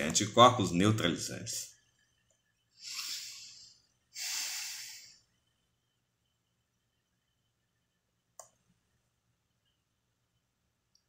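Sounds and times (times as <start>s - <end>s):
breath close to microphone: 2.8s - 5.2s.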